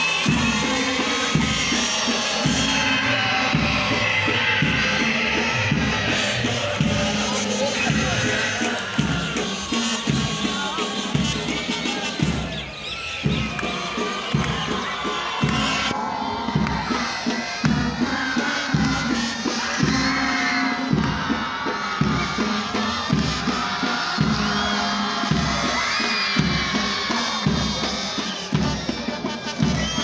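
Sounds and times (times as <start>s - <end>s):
crowd cheering and shouting: 0.0s - 30.0s
music with steady beat: 0.0s - 30.0s.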